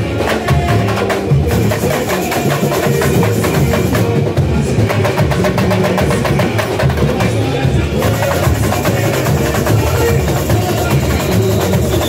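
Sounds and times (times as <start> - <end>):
rapid snare drums: 0.0 - 12.0
samba drum section playing: 0.0 - 12.0
deep bass drums: 3.0 - 12.0.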